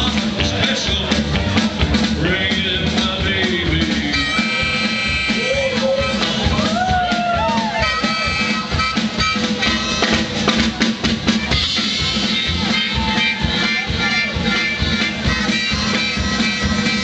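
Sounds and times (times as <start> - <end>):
rockabilly band playing: 0.0 - 17.0
harmonica bending notes: 3.4 - 6.6, 7.8 - 10.5, 11.3 - 17.0.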